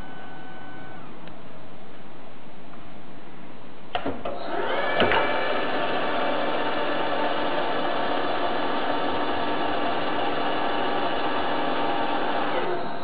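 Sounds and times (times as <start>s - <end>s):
tube bender motor and gear whine: 0.0s - 1.3s, 4.3s - 13.0s.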